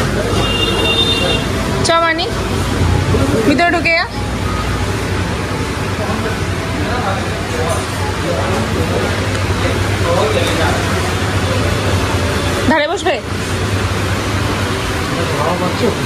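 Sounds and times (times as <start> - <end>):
wall fans rushing: 0.0 - 16.0.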